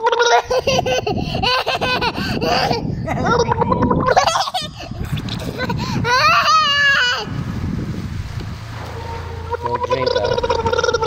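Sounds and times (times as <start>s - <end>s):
child humming bubbling in water: 2.4s - 7.3s.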